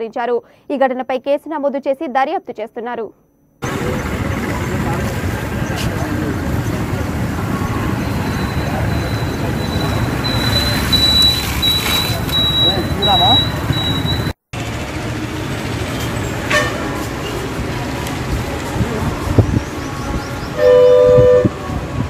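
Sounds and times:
people's voices: 0:03.6 - 0:14.0, 0:16.7 - 0:20.6
traffic: 0:03.6 - 0:22.0.

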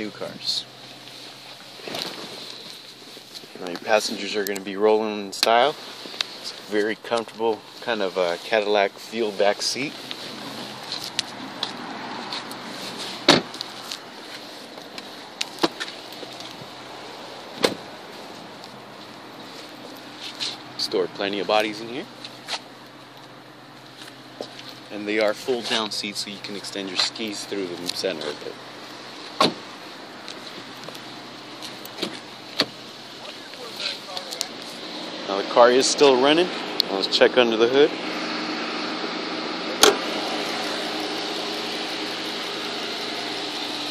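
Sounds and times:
car engine idling: 0:00.0 - 0:43.9
car doors shutting: 0:10.2 - 0:14.0, 0:14.8 - 0:16.8, 0:17.4 - 0:18.0, 0:29.2 - 0:33.4, 0:39.7 - 0:41.1
car door opening clicks: 0:13.2 - 0:13.6, 0:17.5 - 0:17.9, 0:29.3 - 0:29.7, 0:31.7 - 0:32.8, 0:39.8 - 0:40.0.

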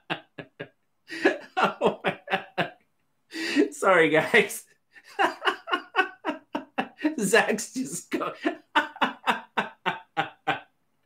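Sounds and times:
man laughing hard: 0:00.0 - 0:10.7.

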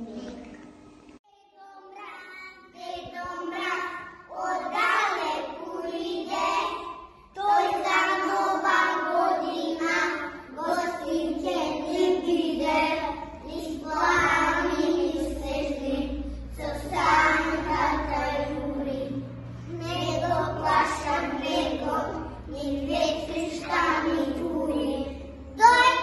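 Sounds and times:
children singing in unison: 0:03.1 - 0:25.5.

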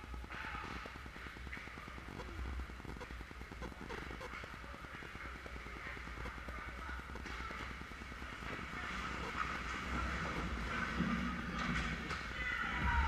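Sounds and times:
steady low hum: 0:00.0 - 0:12.1.

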